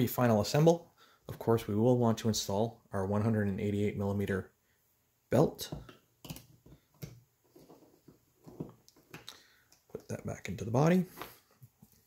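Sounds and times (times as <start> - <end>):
faint clicks and taps of handling parts: 5.6 - 10.2.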